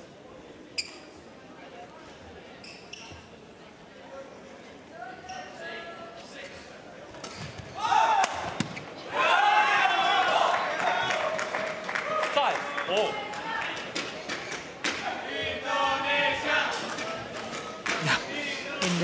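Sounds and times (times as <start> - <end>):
crowd shouting and cheering: 7.8 - 14.0, 17.8 - 19.0.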